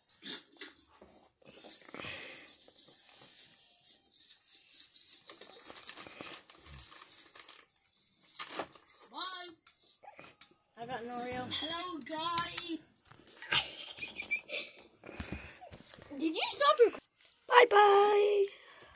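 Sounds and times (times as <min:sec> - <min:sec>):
plastic wrapper crinkling: 0:04.4 - 0:09.0
child's voice: 0:09.1 - 0:09.7, 0:10.9 - 0:12.9, 0:16.1 - 0:18.6.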